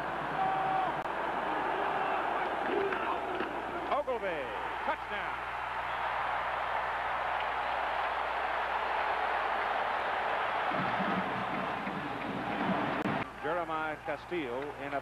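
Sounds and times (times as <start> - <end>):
stadium crowd cheering: 0.0 - 15.0.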